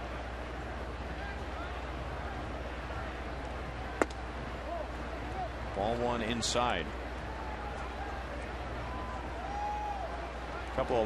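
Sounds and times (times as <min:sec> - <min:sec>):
ballpark crowd noise: 0:00.0 - 0:11.0
baseball smacking into mitt: 0:04.0 - 0:04.2.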